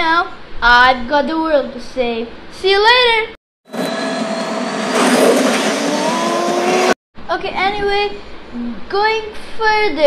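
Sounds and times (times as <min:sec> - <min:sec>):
jet thrusters rushing: 0:03.7 - 0:07.0.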